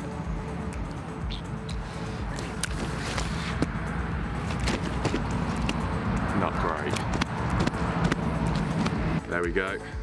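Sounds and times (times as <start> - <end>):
handling knocks slaps and rustles: 4.4 - 5.8.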